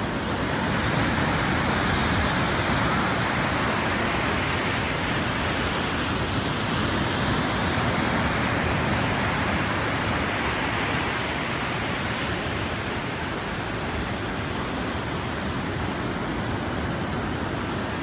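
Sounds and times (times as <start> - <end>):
ocean surf breaking on beach: 0.0 - 18.0.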